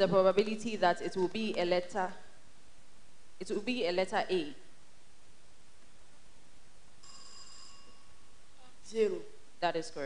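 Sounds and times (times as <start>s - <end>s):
faint room noise: 0.0s - 10.0s
bell-like ring: 7.0s - 8.4s.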